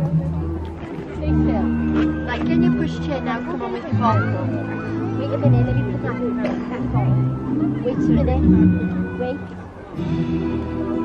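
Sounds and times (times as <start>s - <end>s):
music with sustained low notes: 0.0s - 11.0s
people chattering: 0.0s - 11.0s.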